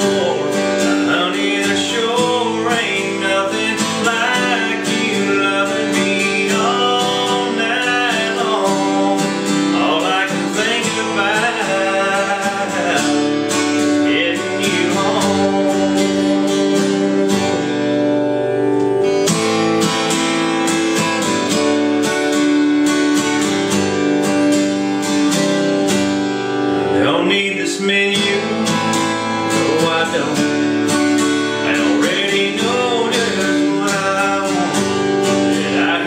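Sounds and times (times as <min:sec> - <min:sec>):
man singing: 0:00.0 - 0:18.0, 0:26.9 - 0:36.0
acoustic guitar strumming: 0:00.0 - 0:36.0.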